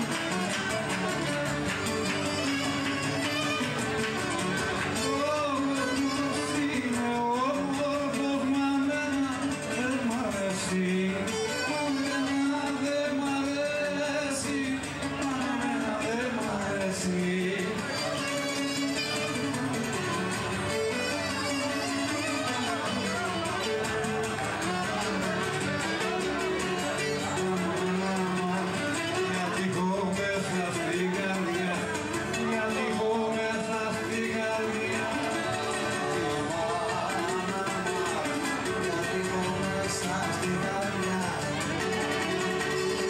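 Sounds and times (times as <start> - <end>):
bowed string melody: 0.0 - 43.0
lute strumming rhythm: 0.0 - 43.0.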